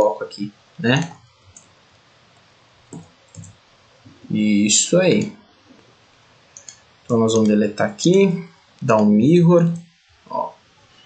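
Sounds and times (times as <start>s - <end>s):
low background hiss: 0.0s - 11.0s
computer keyboard clicks: 2.9s - 3.6s, 6.6s - 7.6s.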